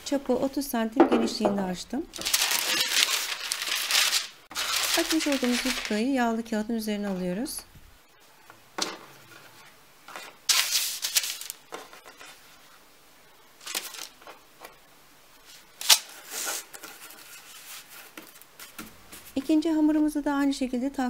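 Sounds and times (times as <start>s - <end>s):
baking paper rustling: 2.1s - 7.6s, 9.2s - 12.8s, 13.6s - 14.8s, 15.4s - 19.5s.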